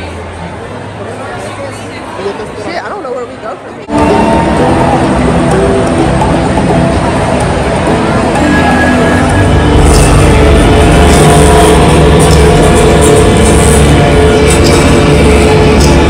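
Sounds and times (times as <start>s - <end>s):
loud concert music over speakers: 3.9s - 16.0s.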